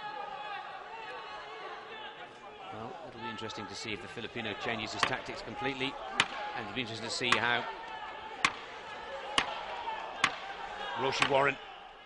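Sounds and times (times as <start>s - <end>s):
background murmur: 0.0s - 12.0s.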